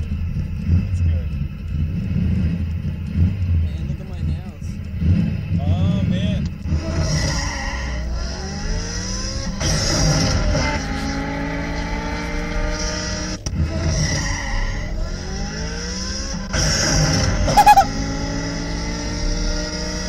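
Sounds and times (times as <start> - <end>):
car engine accelerating: 0.0 - 20.0
high fluttering chirp: 17.5 - 17.9.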